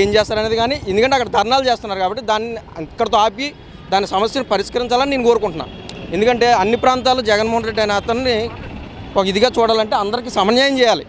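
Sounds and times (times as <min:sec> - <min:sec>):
man talking: 0:00.0 - 0:11.0
street traffic hum: 0:00.0 - 0:11.0.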